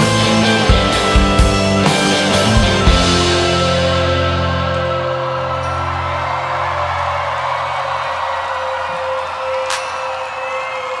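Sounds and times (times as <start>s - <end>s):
crowd cheering and whistling: 2.0s - 11.0s.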